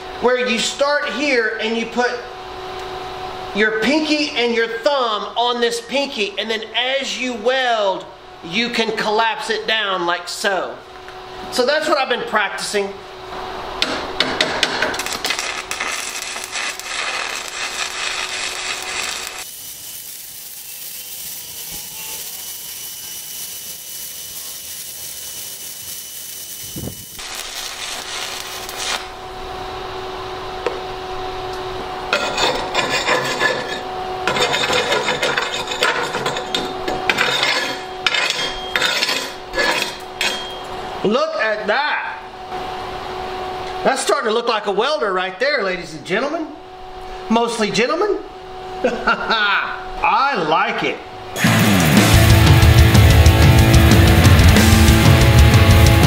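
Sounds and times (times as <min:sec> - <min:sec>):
welder hum: 0:12.7 - 0:40.7, 0:51.3 - 0:56.0
welding arc crackling: 0:13.8 - 0:29.5, 0:51.4 - 0:56.0.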